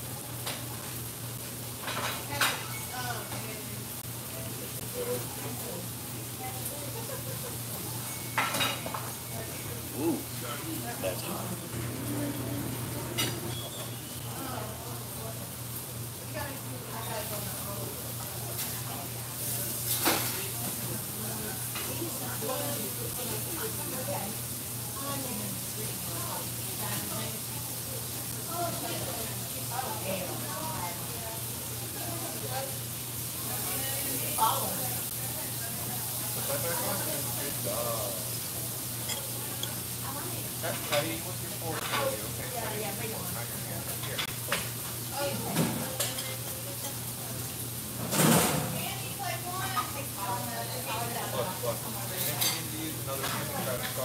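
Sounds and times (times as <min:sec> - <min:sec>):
grill frying hiss: 0:00.0 - 0:54.0
dishes and cutlery clinking: 0:01.8 - 0:03.4, 0:08.0 - 0:09.2, 0:13.0 - 0:14.0, 0:39.0 - 0:39.8, 0:45.5 - 0:47.1, 0:52.2 - 0:54.0.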